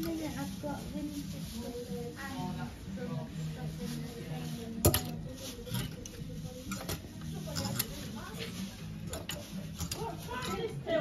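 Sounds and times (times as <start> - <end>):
clothes hangers clicking on rail: 4.8 - 10.7.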